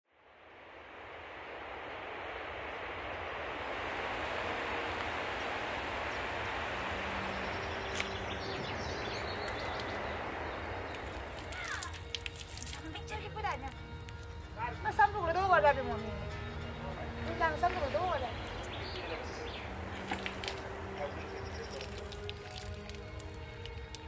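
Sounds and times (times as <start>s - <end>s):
flowing water rushing: 0.1s - 24.0s
voices: 4.2s - 24.0s.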